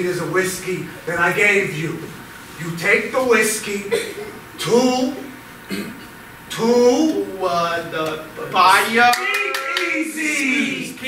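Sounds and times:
person speaking loudly: 6.5 - 11.0
sharp handclaps: 9.0 - 10.0.

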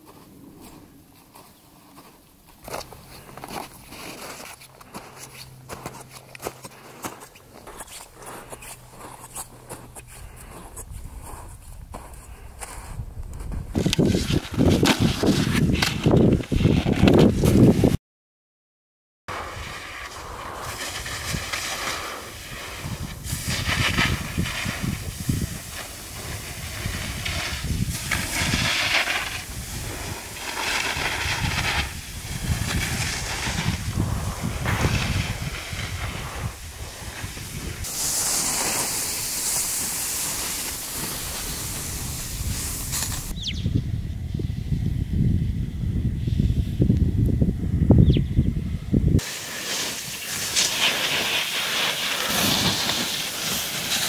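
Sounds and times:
skis scraping on snow: 0.0 - 17.8, 19.3 - 43.4, 49.2 - 54.0
wind buffeting microphone: 7.6 - 18.0, 19.4 - 49.3.

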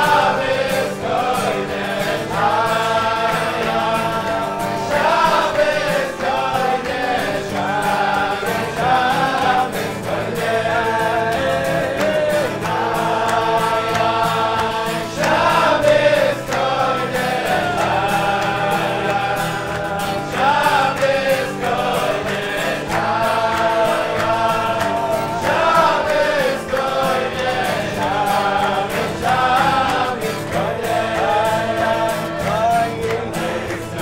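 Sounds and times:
acoustic guitar: 0.0 - 34.0
men singing together: 0.0 - 34.0.

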